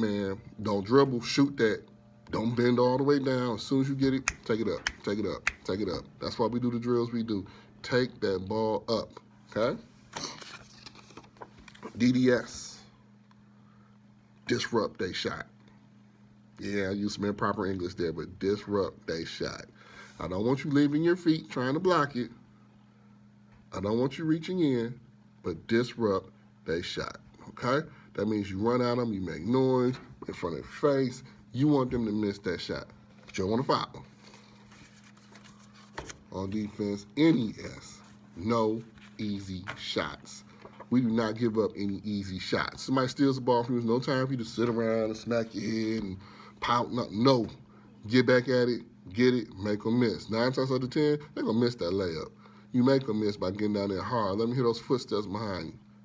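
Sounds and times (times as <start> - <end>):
faint steady hum: 0.0 - 56.0
paper cards rustling and clicking: 10.1 - 12.0, 34.2 - 36.8, 38.8 - 40.9.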